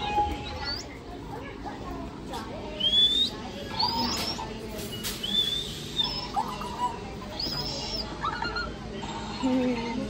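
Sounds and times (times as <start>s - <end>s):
toy electronic chirps and squeaks: 3.7s - 9.2s.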